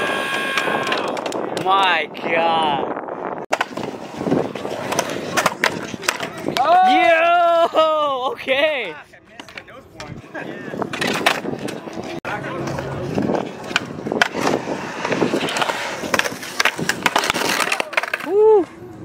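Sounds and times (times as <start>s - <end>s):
skateboard wheels rolling on concrete: 0.0s - 19.0s
skateboard clacking on ground: 0.3s - 2.0s, 3.5s - 7.0s, 9.3s - 19.0s.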